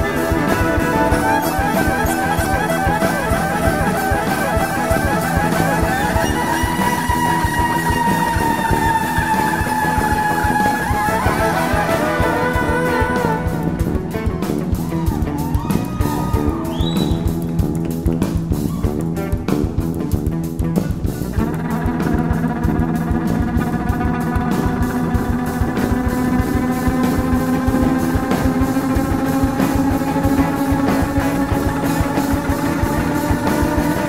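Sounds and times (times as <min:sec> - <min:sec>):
fiddle bowed hard: 0:00.0 - 0:15.1
drum kit with cymbals: 0:00.0 - 0:34.0.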